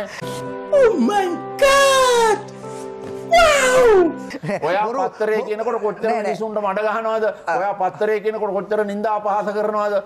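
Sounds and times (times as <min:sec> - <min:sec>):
background music with held notes: 0:00.0 - 0:07.1.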